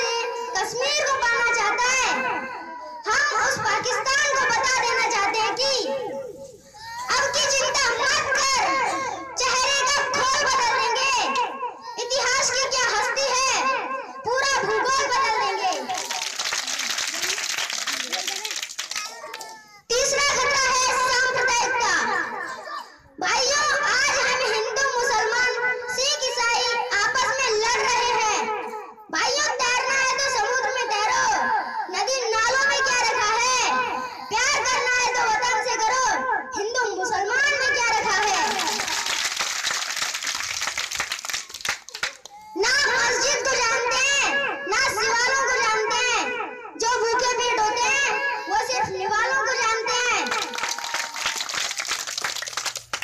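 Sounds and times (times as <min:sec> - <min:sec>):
children clapping: 0:15.6 - 0:19.7, 0:38.3 - 0:42.4, 0:50.2 - 0:53.0
audience applause: 0:16.0 - 0:19.2, 0:38.5 - 0:42.2, 0:50.3 - 0:53.0.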